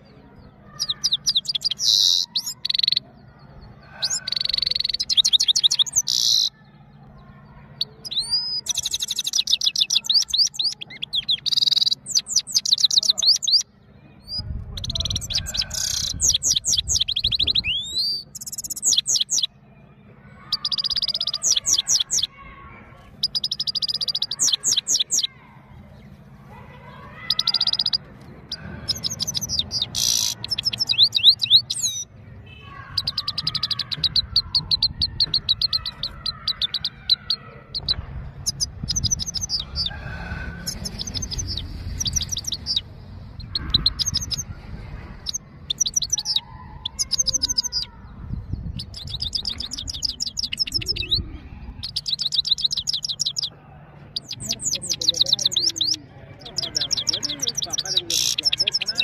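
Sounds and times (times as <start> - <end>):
finch singing high twittering notes: 4.0 - 6.6, 7.7 - 22.4, 23.1 - 26.1, 27.0 - 53.5, 54.1 - 59.0
low rumble: 37.7 - 52.0.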